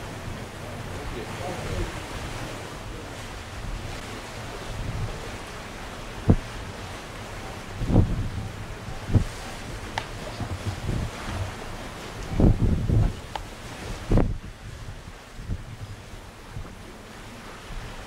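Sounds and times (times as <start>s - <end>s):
sea rushing: 0.0s - 18.0s
wind buffeting microphone: 0.0s - 18.0s
low thumps of gusts: 1.7s - 16.9s.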